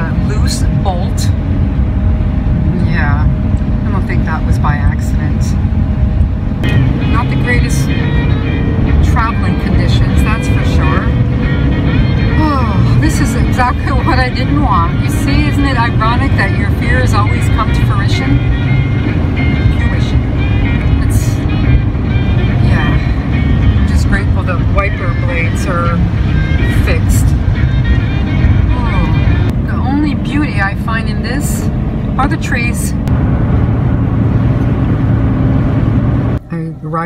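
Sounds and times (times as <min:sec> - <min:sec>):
road and engine noise inside van: 0:00.0 - 0:37.0.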